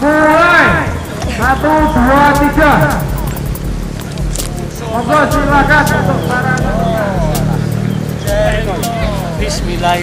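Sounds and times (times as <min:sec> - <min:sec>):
people talking in background: 0:00.0 - 0:10.0
steady low hum: 0:00.7 - 0:09.8.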